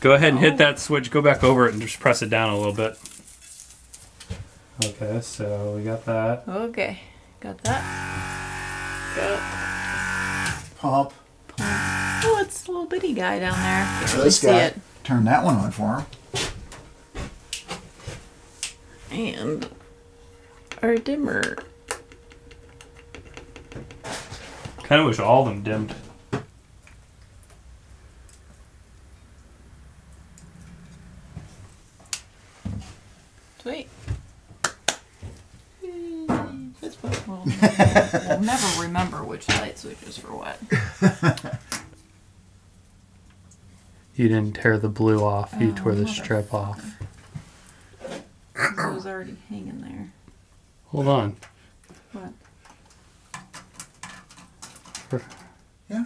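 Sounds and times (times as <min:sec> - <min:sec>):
low steady hum: 0:00.0 - 0:34.5.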